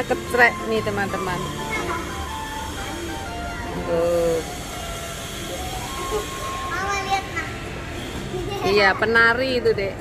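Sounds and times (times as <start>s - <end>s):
terminal hall hum and hiss: 0.0s - 7.2s.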